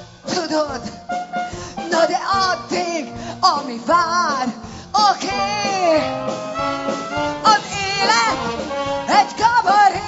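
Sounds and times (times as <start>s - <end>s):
woman singing into microphone: 7.4s - 8.5s, 9.1s - 10.0s.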